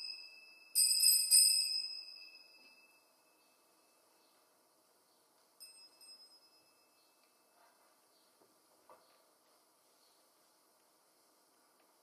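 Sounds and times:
altar bells ringing: 0.0s - 4.1s, 5.6s - 7.2s.

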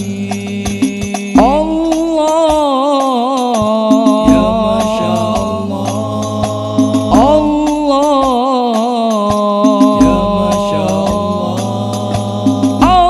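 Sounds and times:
voices singing together: 0.0s - 13.0s
deep bass drum: 0.6s - 2.2s, 4.2s - 8.4s, 9.9s - 13.0s.

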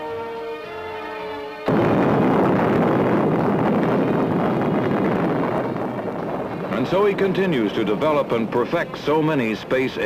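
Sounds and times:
rocket engine firing: 1.7s - 8.0s.

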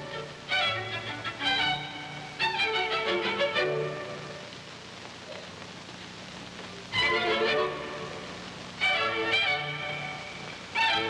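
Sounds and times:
orchestra music: 0.0s - 4.5s, 6.9s - 11.0s.

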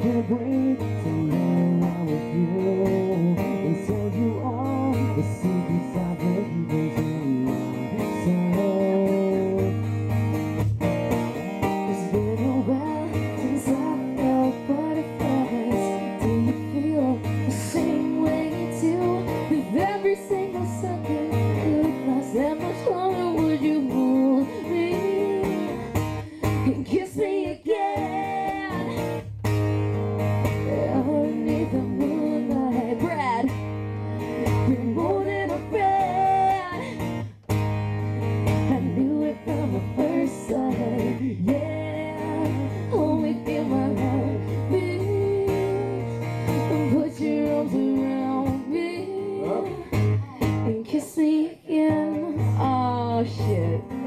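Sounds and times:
woman singing: 0.0s - 9.9s, 11.6s - 29.3s, 30.4s - 37.3s, 38.2s - 54.0s
acoustic guitar strummed: 0.0s - 54.0s.

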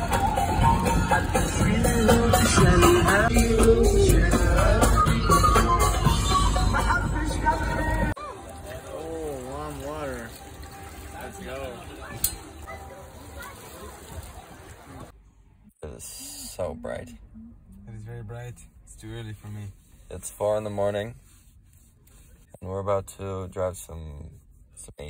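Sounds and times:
music: 0.0s - 13.0s
voices: 6.6s - 15.1s
water poured into metal basin: 7.6s - 15.1s.

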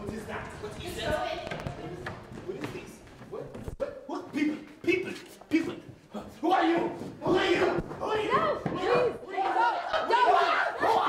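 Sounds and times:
teenagers shouting: 6.5s - 11.0s.

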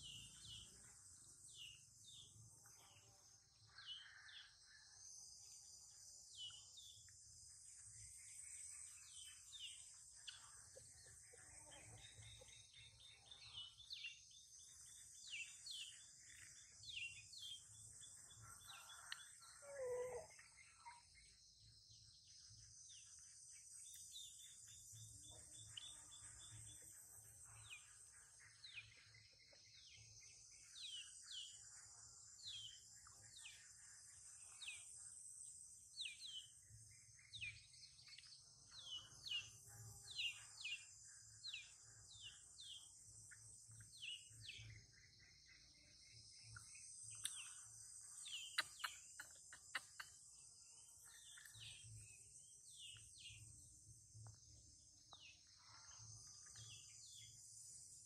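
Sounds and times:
insect drone: 0.0s - 58.0s
birds chirping: 36.0s - 55.6s.

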